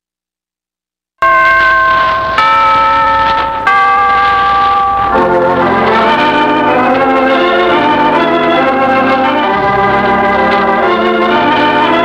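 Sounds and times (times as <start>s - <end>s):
struck chime notes: 1.2s - 12.0s.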